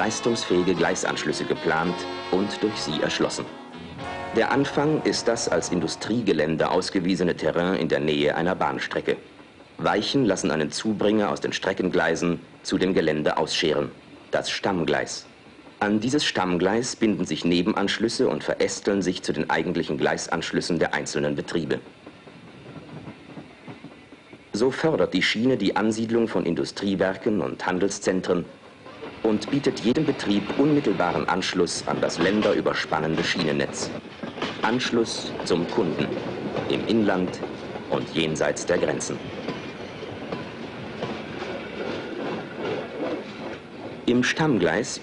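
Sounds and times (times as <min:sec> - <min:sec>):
train rolling along rails: 0:00.0 - 0:45.0.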